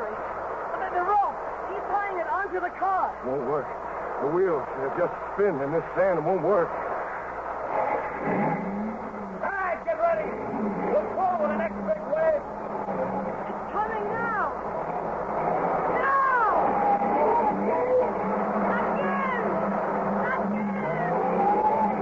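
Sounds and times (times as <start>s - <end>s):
rising and falling whines: 0.0s - 22.0s
steady low hum: 0.0s - 22.0s
wheels spinning in sand: 0.8s - 22.0s
car engine running hard: 2.6s - 22.0s.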